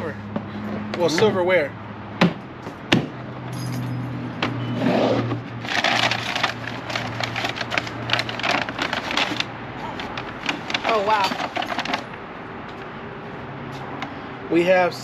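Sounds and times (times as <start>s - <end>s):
silverware rattling in paper bag: 5.6s - 12.2s.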